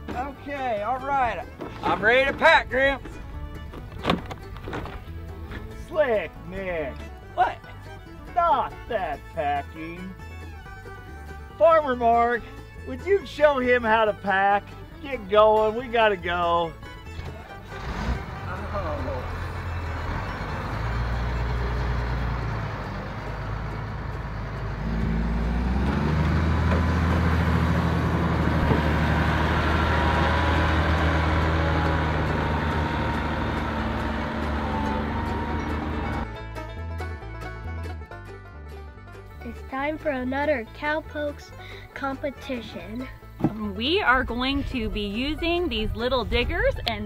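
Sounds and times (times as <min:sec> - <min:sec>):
music: 0:00.0 - 0:26.3, 0:30.6 - 0:47.0
tractor diesel engine under load: 0:00.0 - 0:47.0.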